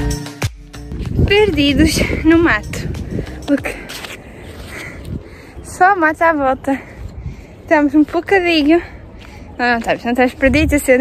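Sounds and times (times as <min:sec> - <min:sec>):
wind noise on microphone: 0:00.0 - 0:11.0
woman speaking: 0:01.2 - 0:03.9, 0:05.6 - 0:07.0, 0:07.7 - 0:11.0.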